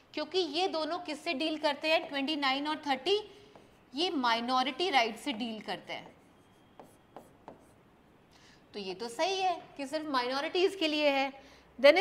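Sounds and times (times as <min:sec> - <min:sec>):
stylus scratching on screen: 0:05.2 - 0:07.8.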